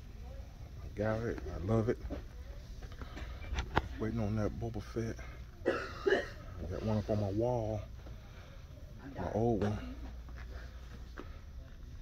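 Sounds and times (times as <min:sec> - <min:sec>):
low shop background hum: 0:00.0 - 0:12.0.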